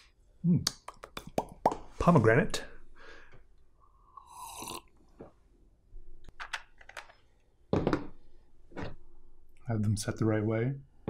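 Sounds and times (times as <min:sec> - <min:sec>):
drinking from a glass: 0:03.8 - 0:05.0.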